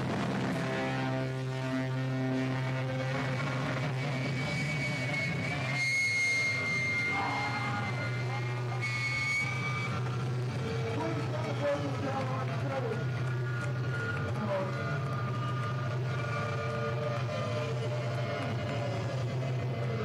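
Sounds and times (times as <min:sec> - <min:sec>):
amplifier hum: 0:00.0 - 0:19.8
high steady feedback whine: 0:00.0 - 0:20.0
indistinct voices: 0:03.0 - 0:20.0.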